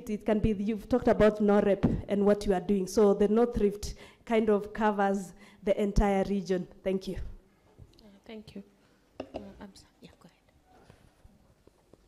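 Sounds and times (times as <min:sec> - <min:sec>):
person whispering: 0:09.4 - 0:10.6.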